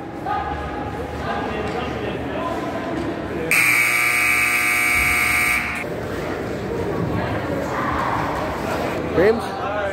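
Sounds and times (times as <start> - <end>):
crowd chatter: 0.0 - 9.9
scoreboard buzzer long tone: 3.5 - 5.8.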